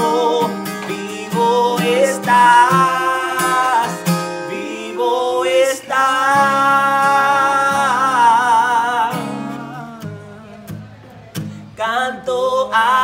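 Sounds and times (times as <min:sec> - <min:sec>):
men singing: 0:00.0 - 0:10.6, 0:11.8 - 0:13.0
strummed acoustic guitar: 0:00.0 - 0:13.0.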